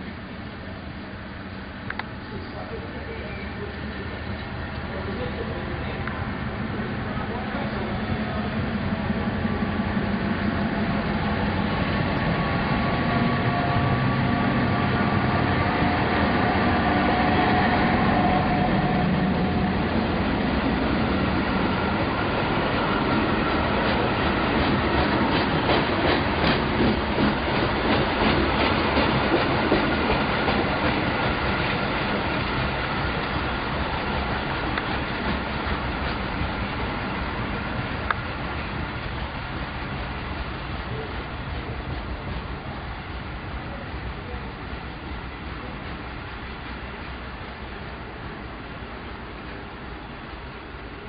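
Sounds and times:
train engine hum: 0:00.0 - 0:51.0
wheels clacking over rail joints: 0:19.3 - 0:39.3.

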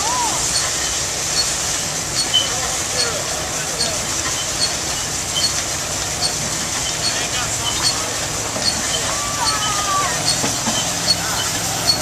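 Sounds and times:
stationary engine beating: 0:00.0 - 0:12.0
steam hissing: 0:00.0 - 0:12.0.

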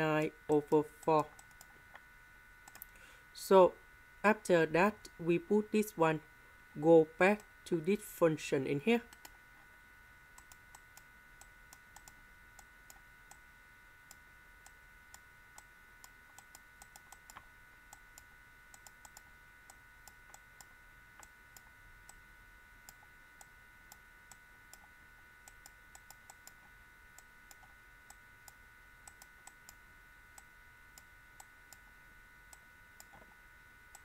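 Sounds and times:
faint electrical whine: 0:00.0 - 0:34.0.

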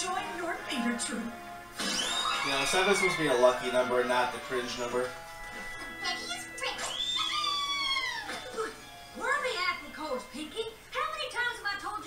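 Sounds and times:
music: 0:00.0 - 0:12.0
cartoon voice squeal falling in pitch: 0:01.8 - 0:03.2, 0:06.8 - 0:08.4.

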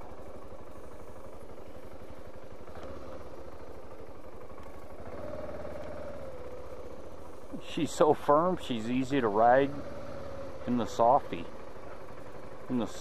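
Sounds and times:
motorcycle engine running at low revs: 0:00.0 - 0:13.0.

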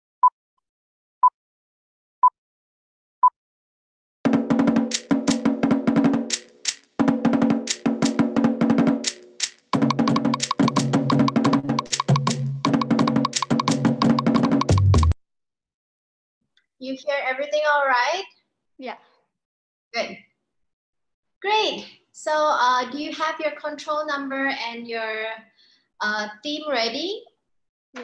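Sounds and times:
deep drum: 0:04.3 - 0:06.4, 0:07.0 - 0:09.1, 0:09.8 - 0:15.2
fast slit drum strokes: 0:04.3 - 0:15.1.

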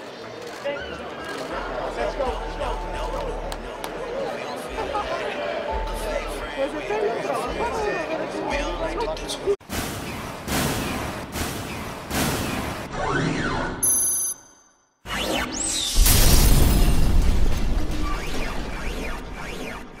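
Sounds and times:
music: 0:01.6 - 0:09.3.

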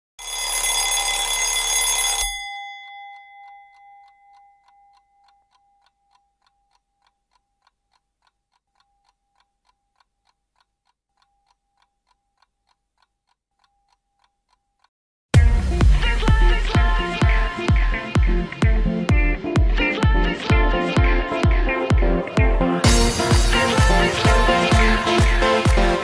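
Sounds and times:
alarm clock ringing: 0:00.2 - 0:07.0
clock ticking: 0:03.1 - 0:26.0.

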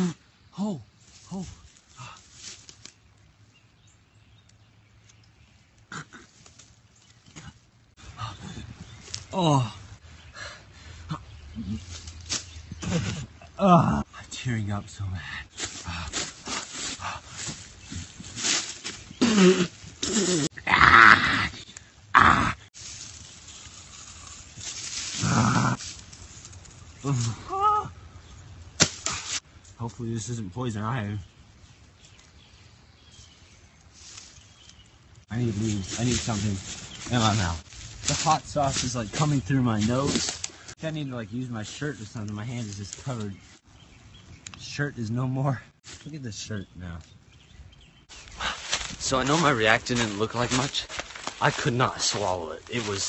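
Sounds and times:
man grunting and gasping: 0:15.2 - 0:16.2, 0:19.2 - 0:22.7
man groaning: 0:19.2 - 0:22.7, 0:27.0 - 0:27.9
faint rustling: 0:22.8 - 0:27.4, 0:33.1 - 0:40.8, 0:48.0 - 0:53.0
man exclaiming oh: 0:27.0 - 0:28.0.

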